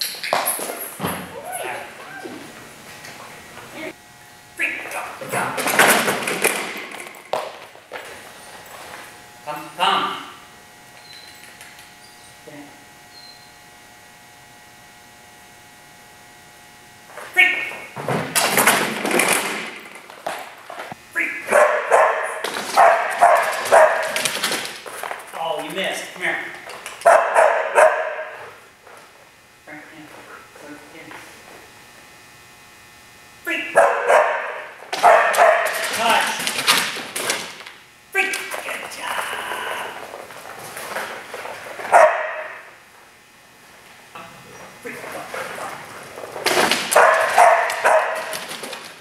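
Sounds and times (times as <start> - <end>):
dog barking: 21.5 - 24.2, 27.0 - 28.4, 33.8 - 35.8, 41.9 - 42.7, 46.9 - 48.4.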